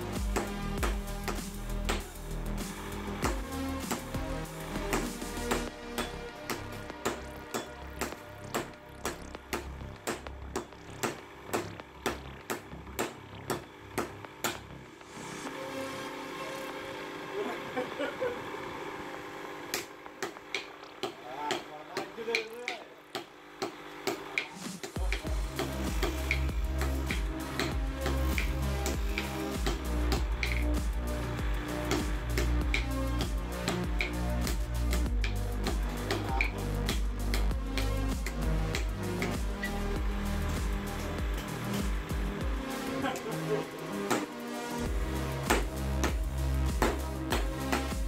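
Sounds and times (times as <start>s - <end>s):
sledgehammer strikes on anvil: 5.9s - 14.6s.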